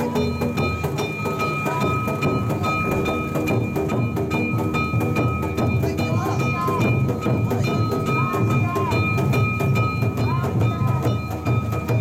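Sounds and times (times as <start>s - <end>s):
high ringing tone: 0.0s - 12.0s
taiko drum beating: 0.0s - 12.0s.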